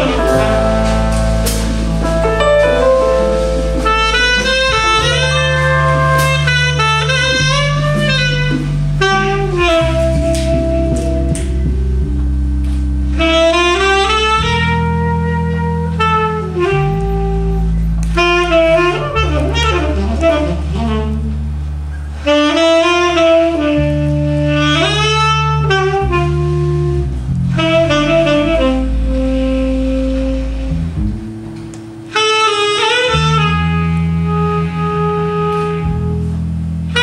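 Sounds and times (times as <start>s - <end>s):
drums: 0.0s - 23.2s
bass notes: 0.0s - 37.0s
live jazz band: 0.0s - 37.0s
saxophone lead line: 0.0s - 37.0s.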